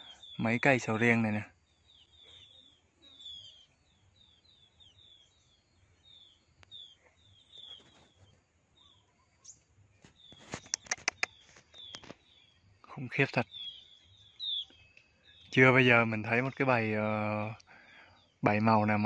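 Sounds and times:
small birds chirping: 0.0s - 19.0s
sharp clicks: 10.5s - 12.2s.

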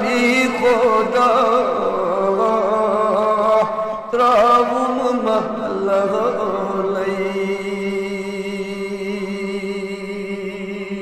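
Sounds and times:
man singing devotional song: 0.0s - 11.0s.

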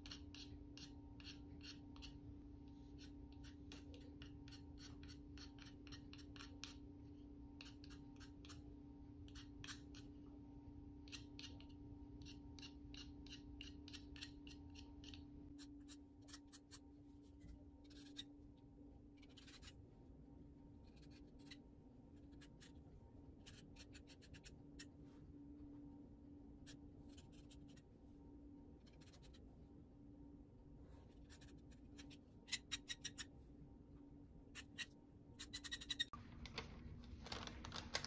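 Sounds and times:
knife scraping pastel stick: 0.0s - 6.9s, 7.5s - 8.6s, 11.1s - 18.4s, 19.2s - 19.8s, 20.8s - 25.0s.

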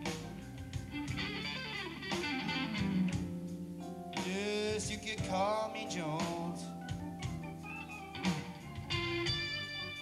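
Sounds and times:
electric guitar notes: 0.0s - 10.0s
live blues band: 0.0s - 10.0s.

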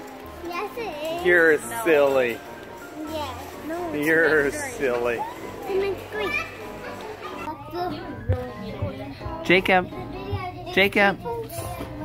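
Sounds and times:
busy shop hubbub: 0.0s - 12.0s
children and adults talking: 0.0s - 12.0s.

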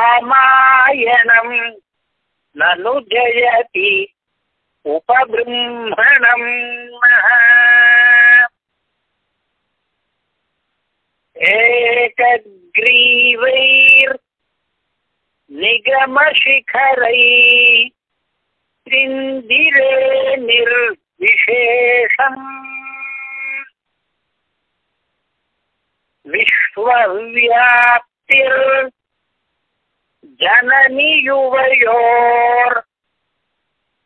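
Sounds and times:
man chanting: 0.0s - 1.9s, 2.5s - 4.2s, 4.8s - 8.6s, 11.4s - 14.2s, 15.5s - 18.0s, 18.8s - 23.7s, 26.3s - 29.0s, 30.2s - 32.9s
man chanting a hymn: 4.9s - 8.5s, 30.3s - 32.9s.

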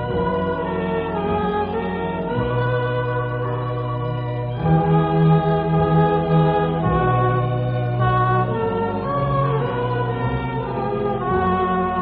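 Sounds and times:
choir singing a hymn: 0.0s - 12.0s
organ chords: 0.0s - 12.0s.

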